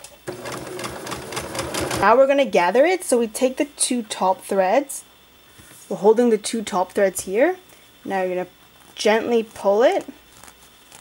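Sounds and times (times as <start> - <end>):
electric sewing machine running: 0.2 - 2.1.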